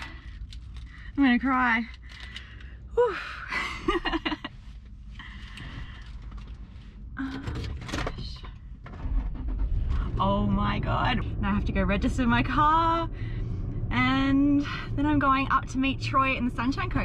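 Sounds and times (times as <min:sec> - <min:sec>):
low rumble: 0:00.0 - 0:17.0
woman laughing excitedly: 0:03.1 - 0:04.5.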